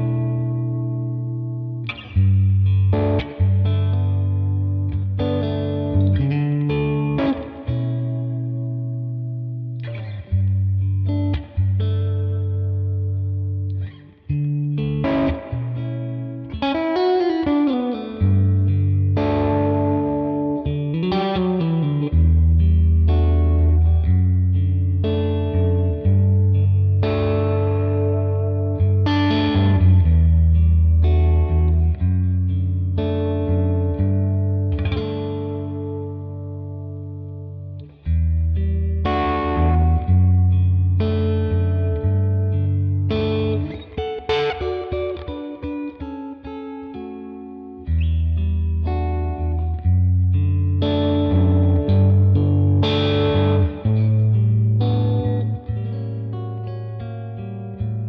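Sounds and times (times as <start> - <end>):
electric guitar playing blues: 0.0 - 58.0.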